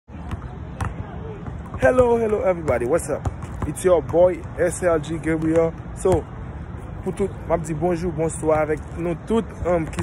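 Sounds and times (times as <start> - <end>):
basketball bouncing on hard court: 0.3 - 4.6.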